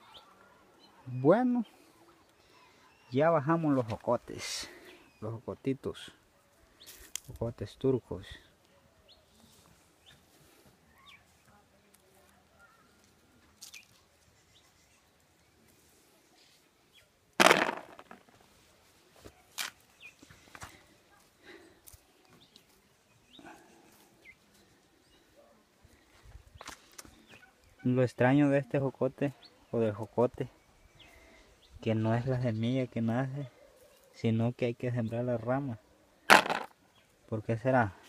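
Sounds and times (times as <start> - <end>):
footsteps on stony ground: 36.3 - 36.7.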